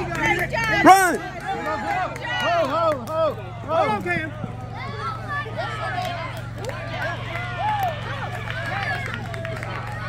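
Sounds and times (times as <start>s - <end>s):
crowd voices calling and chattering: 0.0s - 10.0s.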